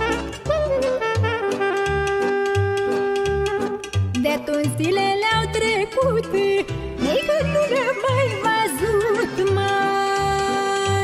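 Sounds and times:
ornamented folk melody: 0.0 - 11.0.

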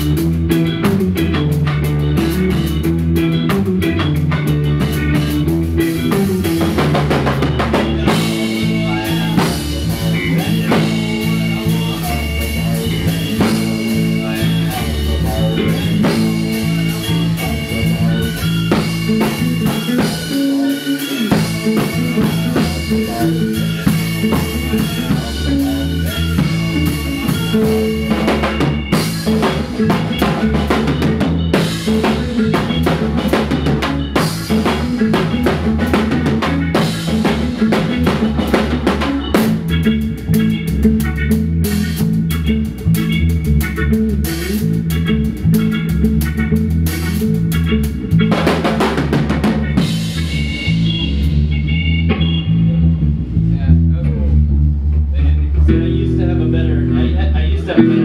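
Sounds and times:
ska band playing: 0.0 - 54.0, 55.0 - 58.0.

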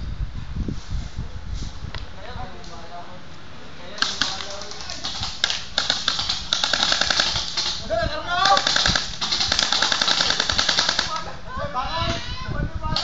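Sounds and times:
mock automatic gunfire: 4.0 - 11.3.

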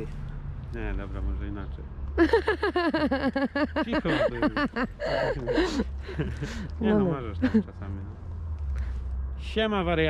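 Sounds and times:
person speaking a word: 3.9 - 5.8, 6.8 - 7.3.

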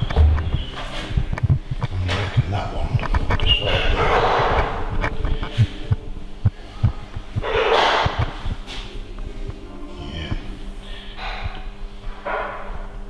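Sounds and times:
microphone thumping and crackling: 0.0 - 8.9.

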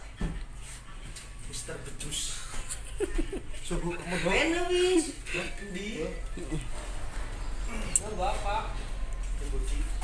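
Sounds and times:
indistinct low voices: 5.2 - 10.0.

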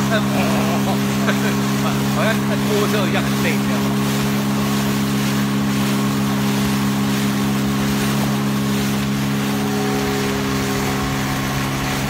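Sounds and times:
outboard motor droning: 0.0 - 12.0
rush of wind and water: 0.0 - 12.0.

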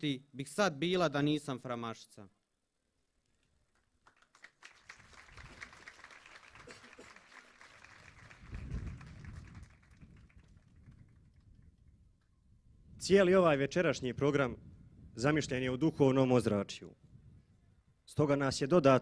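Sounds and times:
audience applauding faintly: 3.7 - 11.9.

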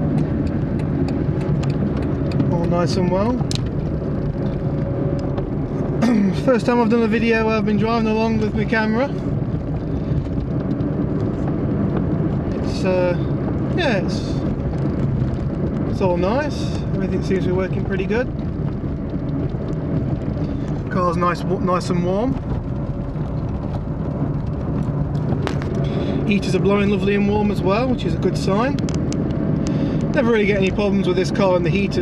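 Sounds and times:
low engine rumble: 0.0 - 32.0
tyre and road noise: 0.0 - 32.0.

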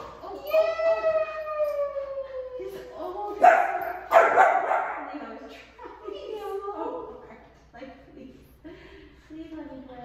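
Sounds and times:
puppy barking: 3.4 - 5.1.

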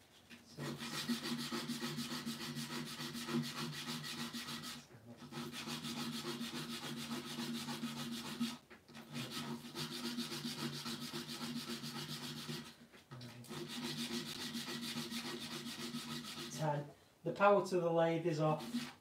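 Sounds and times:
sanding pad rasping on wood: 0.6 - 12.8, 13.5 - 16.7, 18.5 - 19.0.

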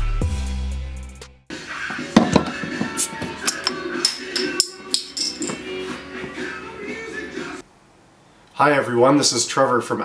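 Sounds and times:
bottle cap popping off: 2.2 - 5.6
light glass clinks and knocks: 2.2 - 5.7.

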